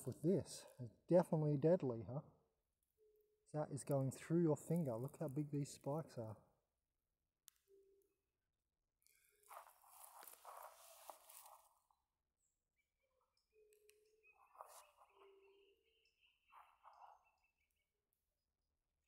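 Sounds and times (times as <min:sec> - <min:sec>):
faint footsteps: 0:09.4 - 0:11.8
rustling in grass: 0:09.5 - 0:11.7.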